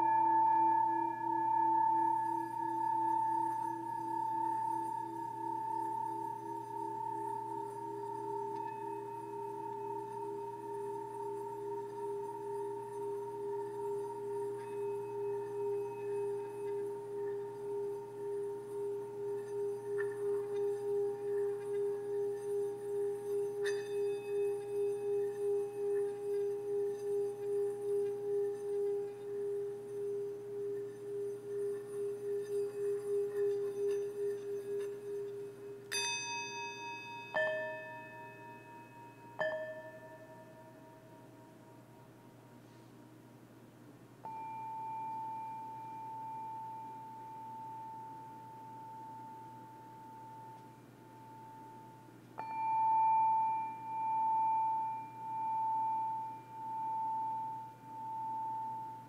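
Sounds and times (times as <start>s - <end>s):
struck singing bowl ringing: 0.0s - 42.2s, 44.2s - 59.0s
singing bowl rubbed around rim: 0.0s - 43.0s, 44.3s - 59.0s.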